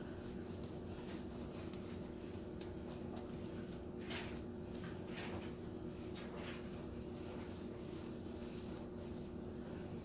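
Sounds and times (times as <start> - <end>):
foam roller rolling paint: 0.0 - 10.0
paintbrush strokes: 0.0 - 10.0
steady low hum: 0.0 - 10.0.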